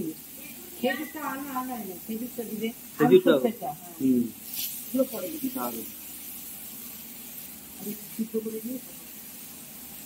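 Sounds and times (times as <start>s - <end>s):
woman speaking: 0.0s - 4.1s, 4.9s - 6.0s, 7.8s - 9.1s
steady low hiss: 0.0s - 10.0s
brief hiss: 4.0s - 8.3s.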